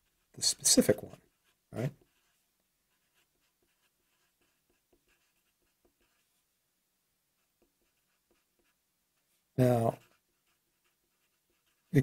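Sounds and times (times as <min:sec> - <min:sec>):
marker scratching on paper: 0:00.0 - 0:06.4, 0:07.4 - 0:12.0.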